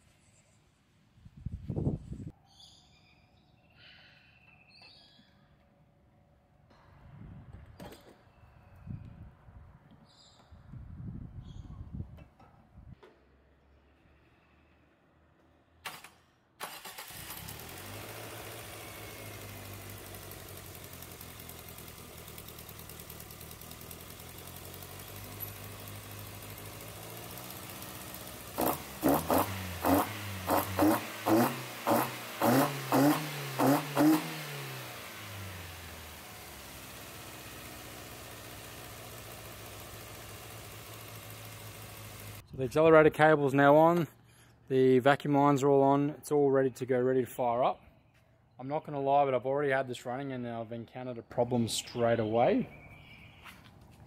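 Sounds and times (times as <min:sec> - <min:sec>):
car engine starting and idling: 0:15.8 - 0:42.4
engine revving: 0:16.6 - 0:42.4.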